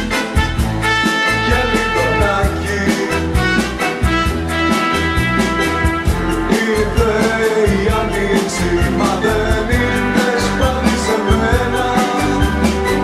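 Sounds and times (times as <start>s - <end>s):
bass guitar: 0.0s - 13.0s
drums steady beat: 0.0s - 13.0s
electric guitar: 0.0s - 13.0s
held keyboard chords: 0.0s - 13.0s.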